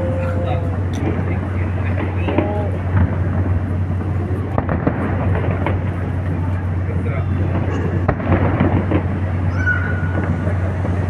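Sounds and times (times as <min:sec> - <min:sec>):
distant fireworks bangs: 0:00.0 - 0:11.0
low rumble: 0:00.0 - 0:11.0
people's voices: 0:00.0 - 0:11.0.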